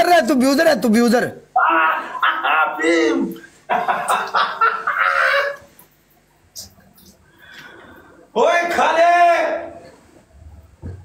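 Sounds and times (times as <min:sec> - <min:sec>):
loud talk: 0:00.0 - 0:03.3, 0:08.4 - 0:09.8
faint human laughter: 0:02.0 - 0:02.8, 0:03.7 - 0:05.7.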